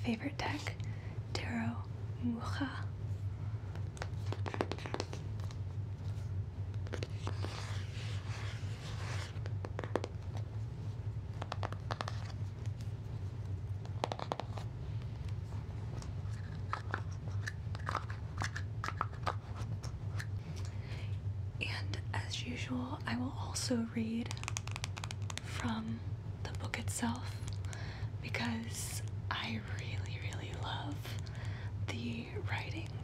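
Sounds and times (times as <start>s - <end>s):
low hum: 0.0s - 24.4s.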